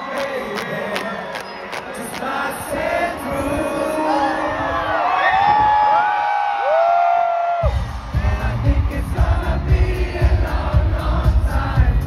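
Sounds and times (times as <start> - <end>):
pop concert music over loudspeakers: 0.0 - 6.8, 7.4 - 12.0
crowd singing and whooping: 0.0 - 12.0.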